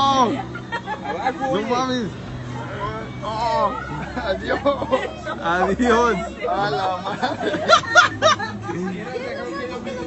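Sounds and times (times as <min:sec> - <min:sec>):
chatter of people: 0:00.0 - 0:10.0.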